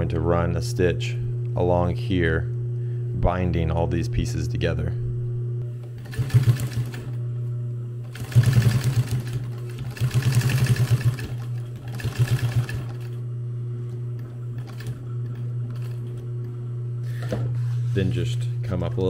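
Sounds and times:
sewing machine motor humming: 5.7 - 7.3, 8.0 - 13.2, 13.8 - 16.6
sewing machine needle chatter: 6.0 - 7.0, 8.1 - 13.1.

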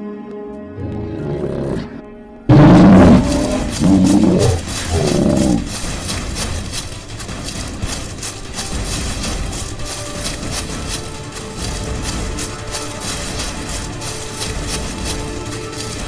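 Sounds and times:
horror music: 0.0 - 16.0
creature roaring: 0.8 - 5.7.

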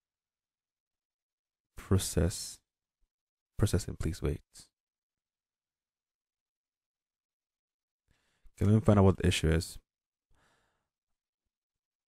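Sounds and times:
person breathing out: 10.3 - 10.9.

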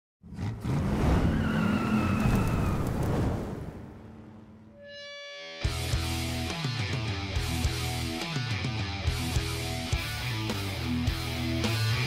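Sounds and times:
car engine revving: 0.2 - 2.1
heavy rock music with electric guitar: 4.9 - 12.0.

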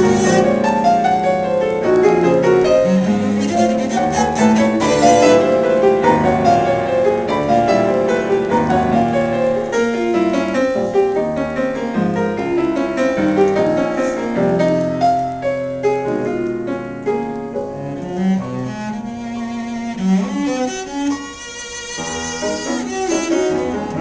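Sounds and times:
bowed cello: 0.0 - 15.6, 17.5 - 24.0
piano notes and chords: 0.0 - 24.0.

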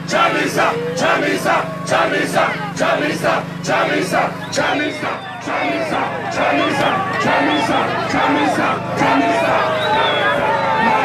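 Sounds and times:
crowd shouting: 0.0 - 11.0
steady low hum: 0.0 - 11.0.

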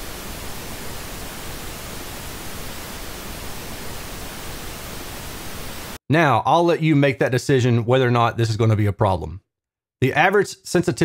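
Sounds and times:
pink noise hiss: 0.0 - 6.0.

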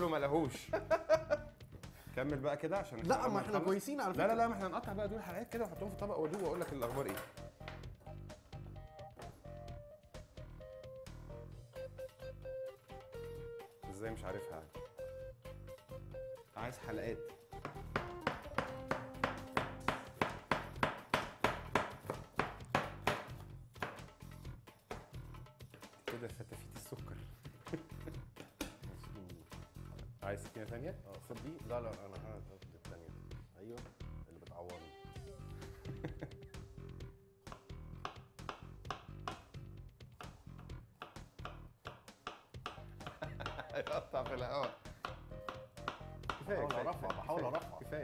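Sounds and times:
background music: 0.0 - 48.0
knife chopping on plastic board: 17.6 - 24.0, 41.0 - 47.4.

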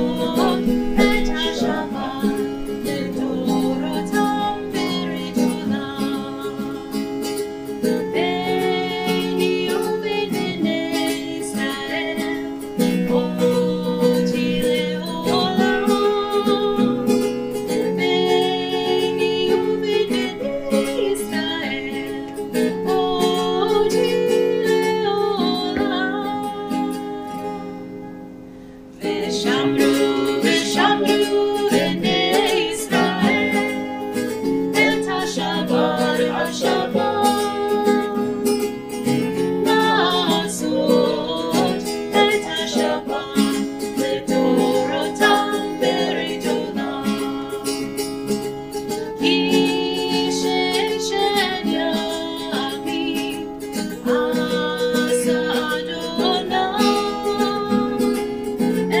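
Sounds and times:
person singing: 0.0 - 28.0, 28.9 - 59.0
acoustic guitar strumming: 0.0 - 59.0.

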